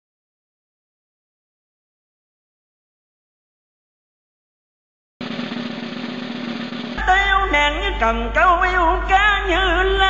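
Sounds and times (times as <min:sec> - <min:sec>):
drum roll: 0:05.2 - 0:07.9.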